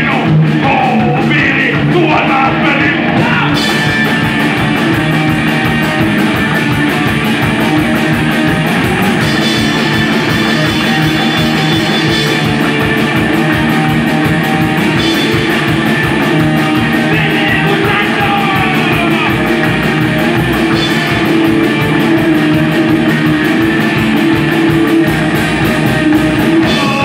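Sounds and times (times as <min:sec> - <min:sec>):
drum kit: 0:00.0 - 0:27.0
electric guitar: 0:00.0 - 0:27.0
upright double bass: 0:00.0 - 0:27.0.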